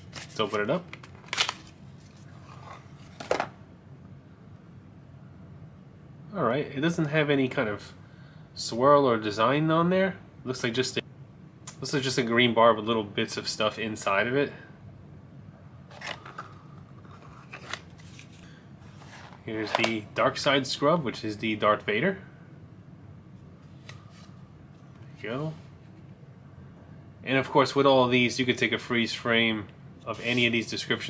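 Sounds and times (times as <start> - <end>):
cardboard scraping and rustling: 0.0 - 3.5, 17.1 - 19.9.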